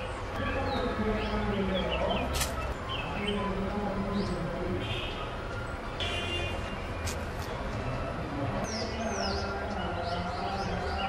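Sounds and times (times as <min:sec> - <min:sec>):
bird chirping: 0:00.0 - 0:08.0, 0:08.6 - 0:11.0.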